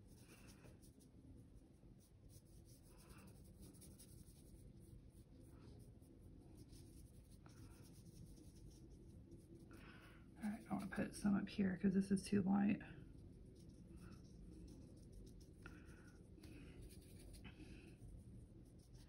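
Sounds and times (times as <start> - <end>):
brush strokes on paper: 0.0 - 11.3, 13.0 - 19.0
low room hum: 0.0 - 19.0.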